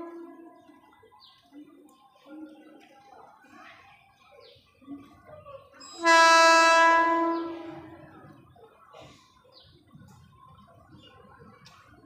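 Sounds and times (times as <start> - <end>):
train horn blast: 0.0 - 0.5, 5.9 - 8.0.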